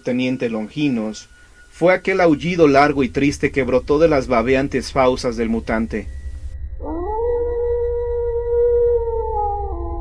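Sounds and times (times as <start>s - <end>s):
low background drone: 0.0s - 10.0s
wolf howling: 6.8s - 10.0s.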